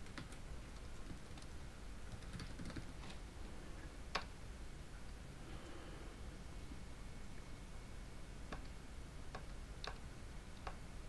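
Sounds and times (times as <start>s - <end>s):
keyboard keys typing: 0.0s - 1.5s, 2.1s - 3.0s.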